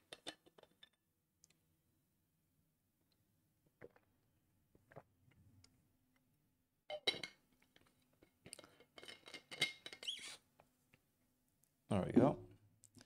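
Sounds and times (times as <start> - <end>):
brief squeak: 10.0 - 10.4.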